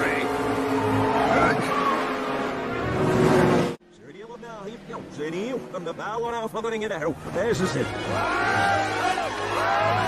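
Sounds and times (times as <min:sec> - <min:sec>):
race car engines: 0:00.0 - 0:10.0
music: 0:07.1 - 0:10.0.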